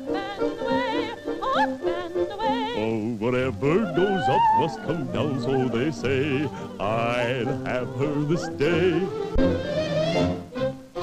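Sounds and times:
musical accompaniment: 0.0s - 11.0s
operetta singing with vibrato: 0.0s - 11.0s.

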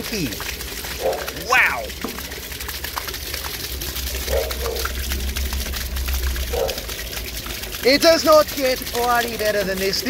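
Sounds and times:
water gushing from drain pipe: 0.0s - 10.0s
water splashing on ground: 0.0s - 10.0s.

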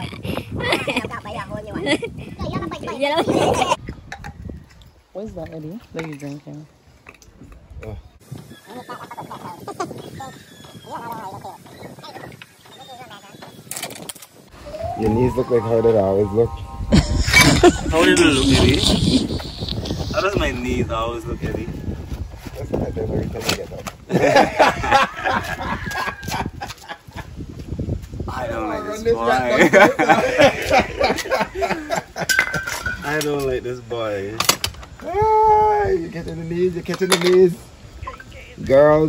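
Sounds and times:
cackling laughter: 8.6s - 10.1s, 16.9s - 20.2s, 24.1s - 27.3s, 29.6s - 32.3s
indistinct voices: 14.5s - 21.6s.

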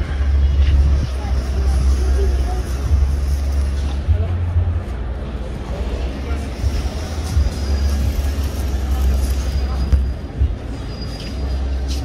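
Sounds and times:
faint voices of passers-by: 0.0s - 12.0s
road traffic rumble: 0.0s - 12.0s.

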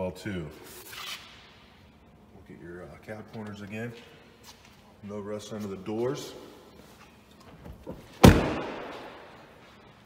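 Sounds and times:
truck door slamming: 7.8s - 8.9s.

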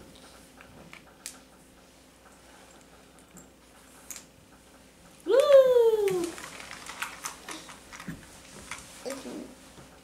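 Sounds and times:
plastic toy pieces clicking: 6.1s - 8.1s.

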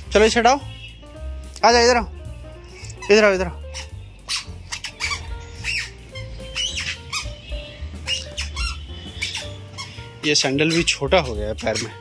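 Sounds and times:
background music with bass line: 0.0s - 12.0s
squeaky sandals squeaking: 2.6s - 12.0s.

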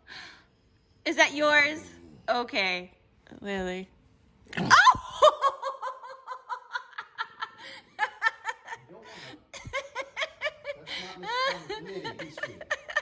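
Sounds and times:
woman laughing: 4.6s - 8.8s, 9.6s - 13.0s.

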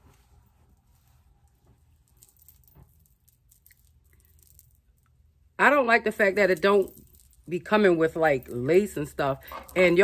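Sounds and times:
comb rustling through wig: 0.0s - 4.9s.

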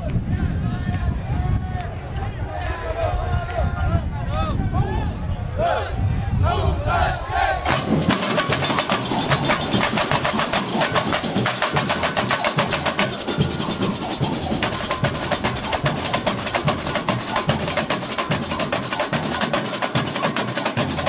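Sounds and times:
drum corps playing samba rhythm: 7.7s - 21.0s.

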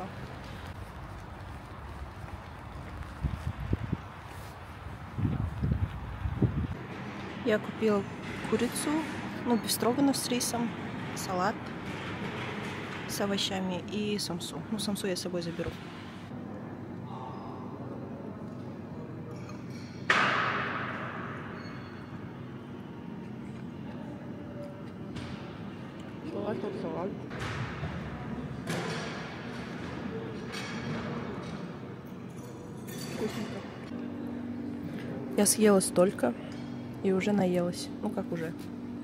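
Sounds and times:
cutlery and crockery clinking: 32.3s - 33.6s
steady hum: 33.4s - 39.0s.

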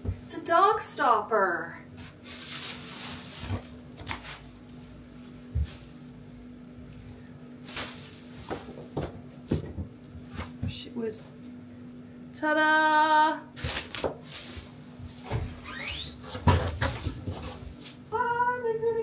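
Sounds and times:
packaging rustling: 2.0s - 4.6s, 7.6s - 9.1s, 13.6s - 14.8s
knocks of cardboard and wood: 8.4s - 10.8s, 16.2s - 17.8s.

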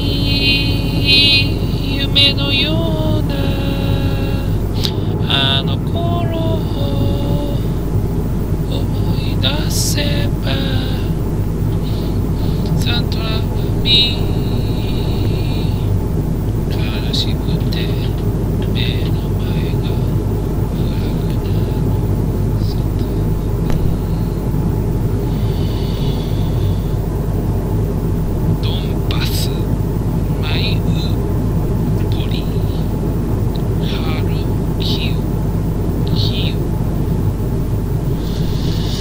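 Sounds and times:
person singing: 0.0s - 7.9s, 8.6s - 16.0s, 25.3s - 27.0s, 38.2s - 39.0s
airliner cabin drone: 0.0s - 39.0s.

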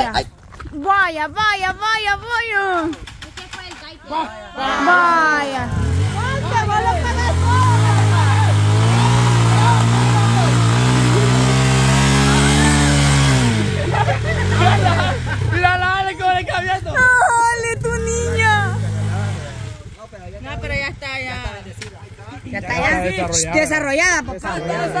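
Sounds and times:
motorcycle engine revving hard: 5.5s - 16.0s, 17.8s - 20.0s.

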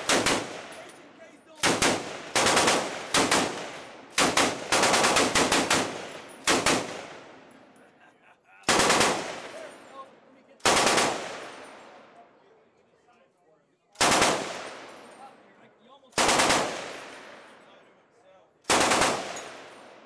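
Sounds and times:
automatic rifle fire: 0.0s - 0.8s, 1.6s - 7.2s, 8.7s - 9.6s, 10.6s - 11.6s, 14.0s - 14.8s, 16.2s - 17.2s, 18.7s - 19.7s.

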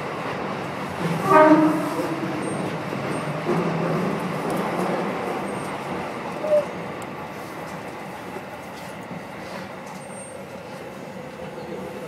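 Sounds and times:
subway train wheels rumbling: 0.0s - 12.0s.

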